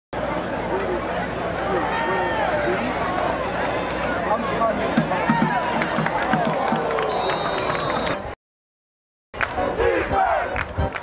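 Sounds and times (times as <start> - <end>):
crowd noise: 0.2 - 8.4, 9.4 - 11.0
people shouting: 9.8 - 10.5.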